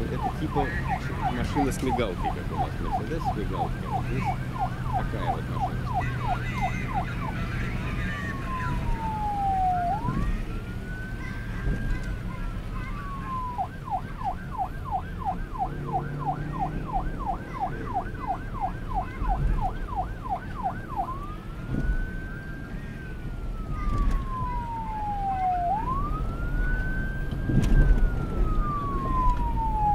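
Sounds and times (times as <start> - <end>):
police siren yelp and wail: 0.0 - 29.9.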